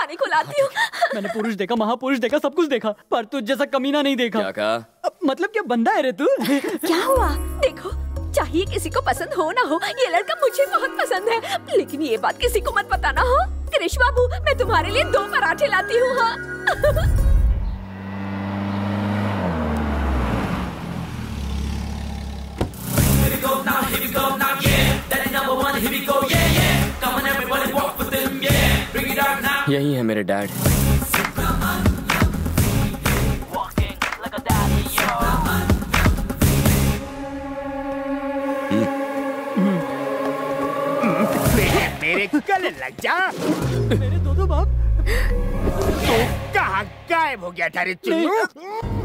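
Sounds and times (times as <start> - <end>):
car engine passing: 16.8 - 23.3
man crying out: 48.1 - 48.9.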